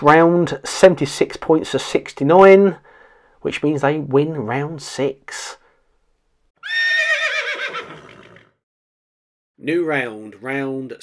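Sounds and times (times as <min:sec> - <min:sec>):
horse whinny: 0:06.6 - 0:08.6.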